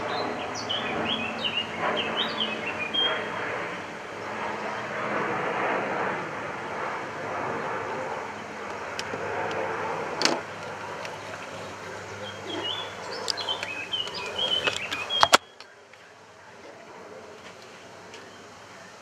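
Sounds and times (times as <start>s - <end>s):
bird chirps: 0.0s - 3.3s, 10.7s - 16.6s
outdoor background rumble: 0.0s - 19.0s.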